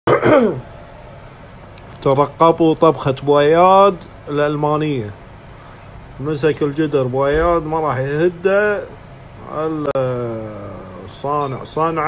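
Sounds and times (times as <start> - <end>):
man's short vocal sound: 0.1 - 0.7
steady low hiss: 0.1 - 12.0.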